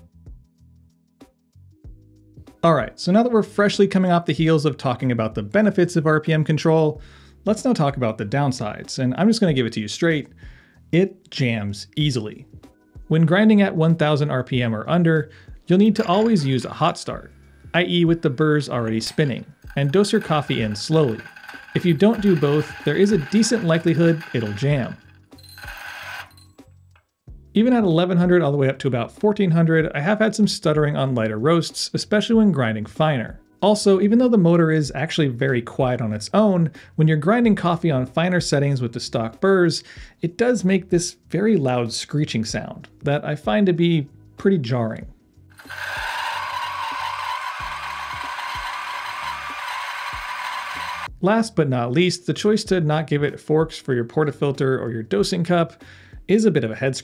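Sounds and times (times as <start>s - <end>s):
quiet background music: 0.0s - 57.0s
coffee grinder grinding beans: 15.8s - 26.5s, 45.6s - 51.1s.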